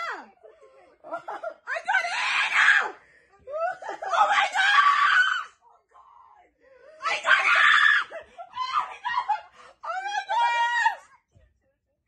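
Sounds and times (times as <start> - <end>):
woman screaming: 3.8 - 5.6, 7.0 - 11.1.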